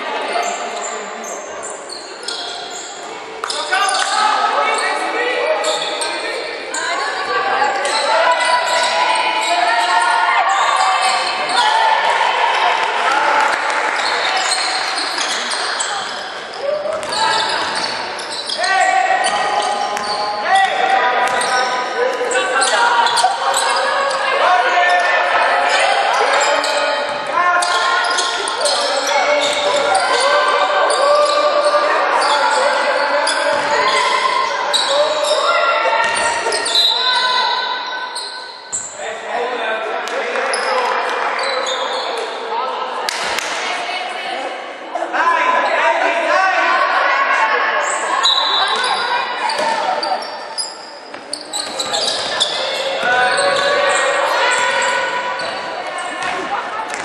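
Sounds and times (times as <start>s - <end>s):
voices calling out: 0.0s - 57.0s.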